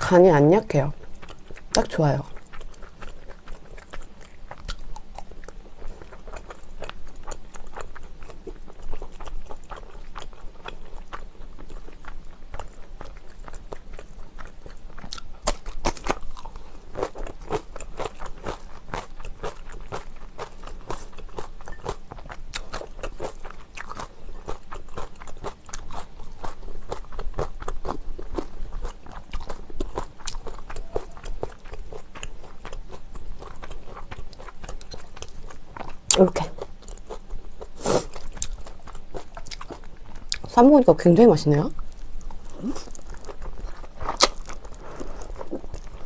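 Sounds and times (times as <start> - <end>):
crunchy food chewing: 0.8 - 40.6, 41.7 - 46.0
wet mouth sounds: 42.3 - 46.0.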